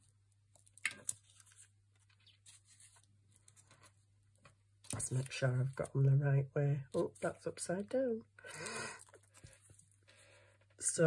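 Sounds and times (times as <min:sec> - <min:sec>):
card pieces scraping and rustling: 0:00.5 - 0:04.0.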